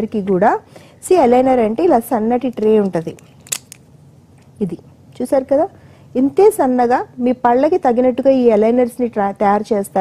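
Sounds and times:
woman talking: 0.0 - 3.3, 4.6 - 10.0.

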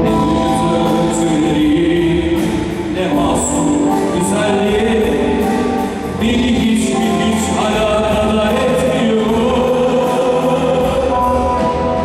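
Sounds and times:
live rock band playing: 0.0 - 12.0.

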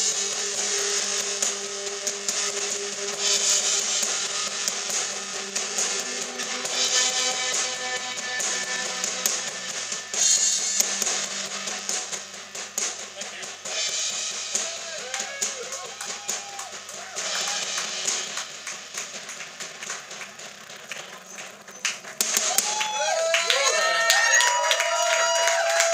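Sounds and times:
drum kit with cymbal crashes: 0.0 - 25.9.

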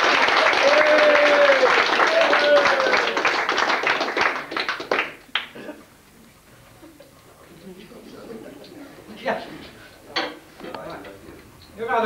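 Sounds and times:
crowd applause: 0.0 - 5.7.

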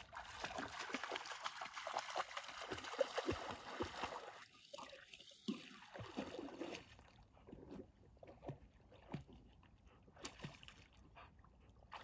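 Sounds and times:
dog wading through water: 0.0 - 12.0.

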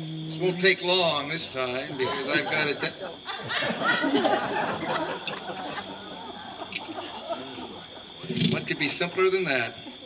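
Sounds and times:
murmur of audience voices: 0.0 - 10.0.

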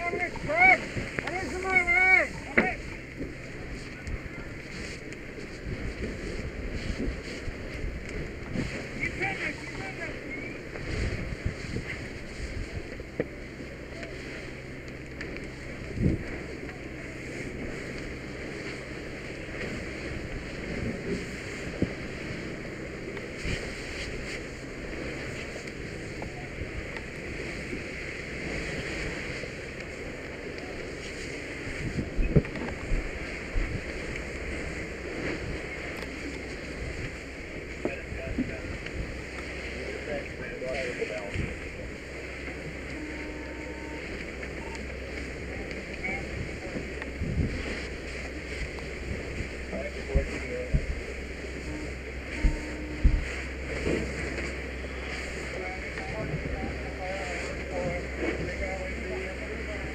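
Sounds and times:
low rumbling noise: 0.0 - 59.9
steady rushing noise: 0.0 - 59.9.

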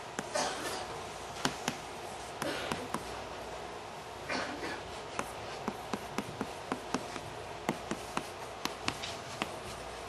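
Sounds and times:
chalk tapping on blackboard: 1.4 - 3.2, 5.0 - 9.8.

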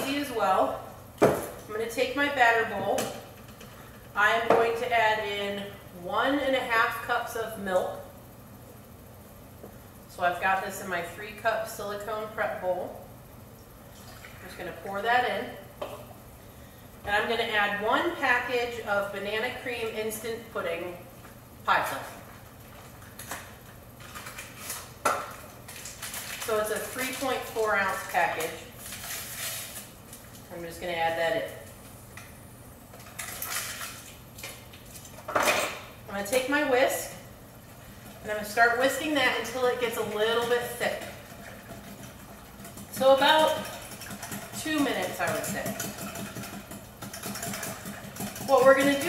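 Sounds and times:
packaging crinkling and tearing: 25.7 - 26.5
wire whisk beating in glass bowl: 40.3 - 49.0.

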